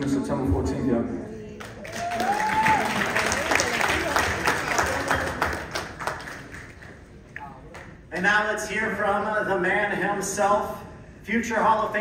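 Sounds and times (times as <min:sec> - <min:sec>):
audience applause: 0:01.6 - 0:07.1.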